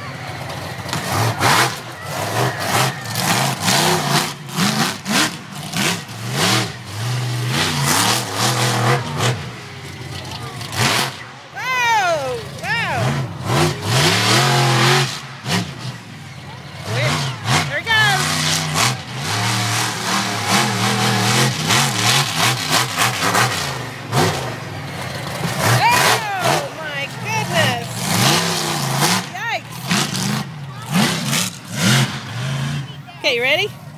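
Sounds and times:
onlookers shouting: 0.0s - 4.1s, 8.5s - 15.0s, 25.6s - 28.3s
truck engine revving: 0.0s - 33.9s.

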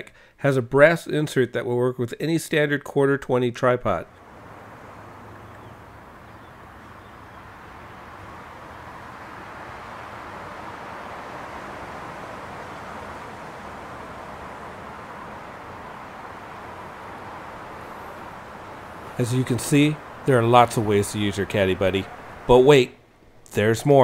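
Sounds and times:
outdoor ambience: 0.0s - 24.0s.

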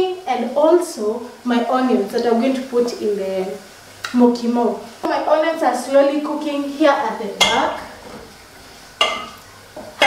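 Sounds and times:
faint hiss from cooking pot: 0.0s - 10.0s
spoon knocking on metal pot: 7.4s - 7.8s, 9.0s - 10.0s.

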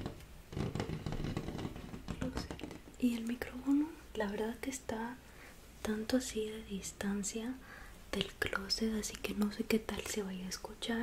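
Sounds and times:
small knocks: 0.0s - 3.0s.

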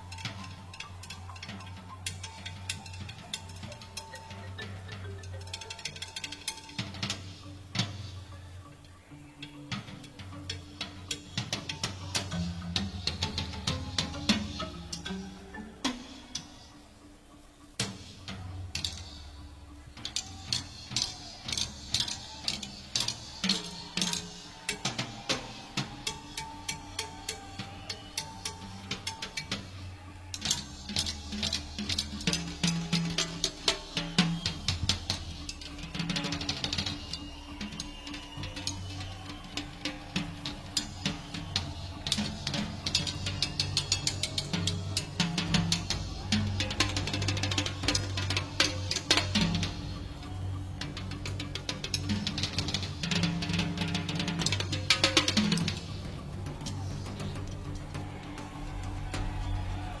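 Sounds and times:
drum kit and percussion hits: 17.8s - 60.0s.

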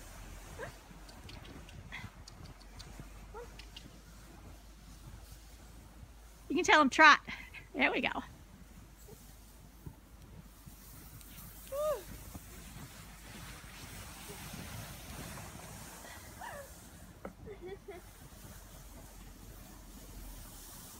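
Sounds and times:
plastic sled towed over snow: 0.0s - 20.9s.

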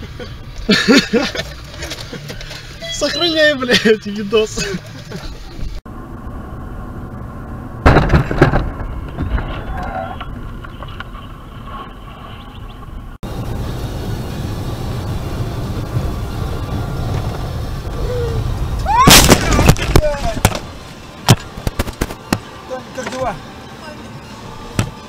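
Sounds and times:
road rumble: 0.0s - 25.0s.

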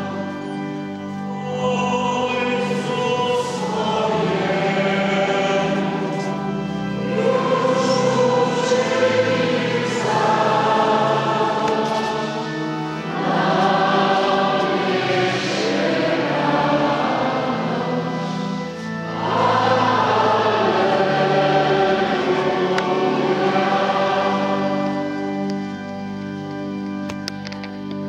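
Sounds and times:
choir singing in a church: 0.0s - 28.0s.

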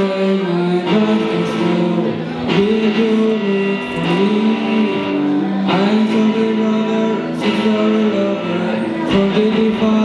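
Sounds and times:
electric guitar: 0.0s - 10.0s
live band instrumental: 0.0s - 10.0s.

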